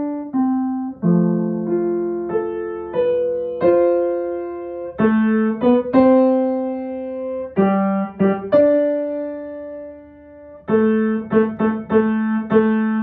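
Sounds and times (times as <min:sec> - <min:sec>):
piano chords: 0:00.0 - 0:13.0.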